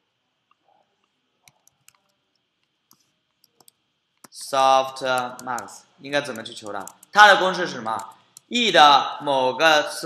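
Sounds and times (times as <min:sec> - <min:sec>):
computer mouse clicks: 0:00.5 - 0:04.4, 0:05.1 - 0:07.2, 0:07.9 - 0:08.5.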